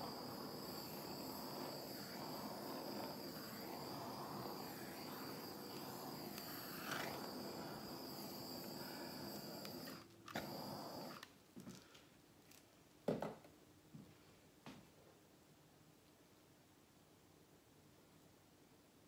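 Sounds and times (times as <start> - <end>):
handheld torch hissing: 0.0 - 11.3.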